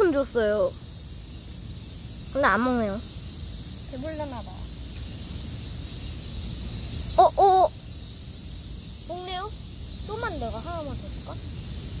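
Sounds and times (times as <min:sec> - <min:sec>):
even high hiss: 0:00.0 - 0:12.0.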